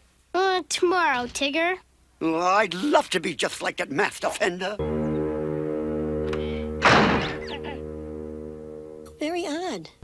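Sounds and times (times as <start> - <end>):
held music chord: 4.8 - 9.3
cartoon thunk on wooden door: 6.8 - 7.7.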